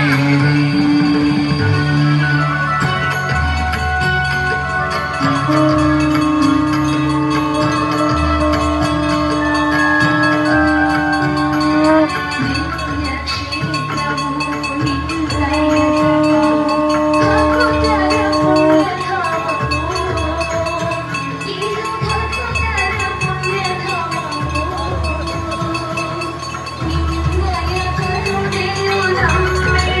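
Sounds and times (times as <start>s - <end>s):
long held drone tone: 0.0s - 21.2s
hand bells ringing: 0.0s - 30.0s
melody: 0.0s - 30.0s.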